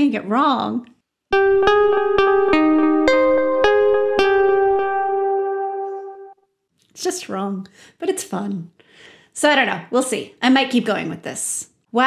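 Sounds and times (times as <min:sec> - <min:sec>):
keyboard melody in minor key: 0:01.3 - 0:06.4.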